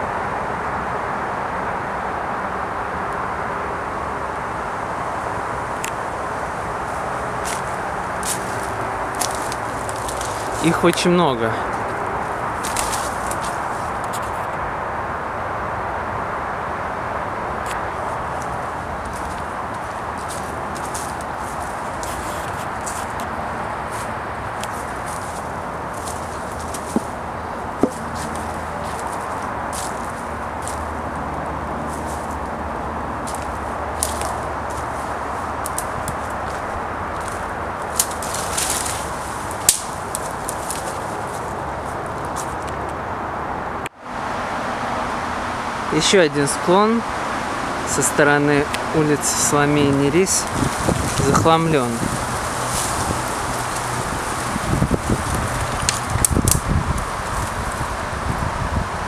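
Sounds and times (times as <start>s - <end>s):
outdoor background hiss: 0.0s - 59.0s
footsteps snapping dry twigs: 5.8s - 6.0s, 7.3s - 14.6s, 17.6s - 32.6s, 33.2s - 43.0s, 50.4s - 57.9s.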